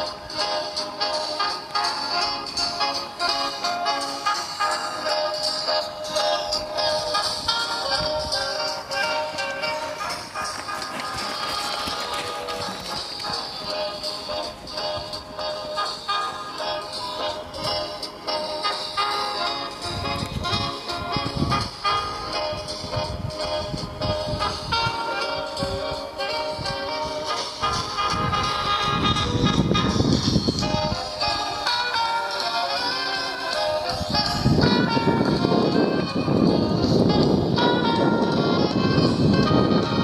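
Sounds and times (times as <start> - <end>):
music playing: 0.0 - 40.0.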